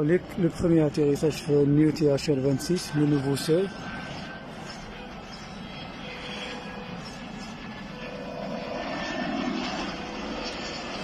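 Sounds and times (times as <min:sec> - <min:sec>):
jet airliner landing: 0:00.0 - 0:11.0.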